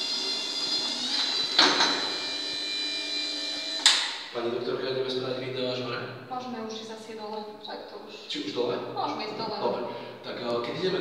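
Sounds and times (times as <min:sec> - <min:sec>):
stair climber motor whine: 0:00.0 - 0:04.3.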